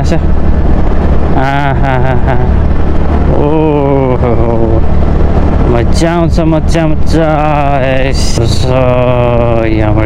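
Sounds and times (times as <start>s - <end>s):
wind noise: 0.0s - 10.0s.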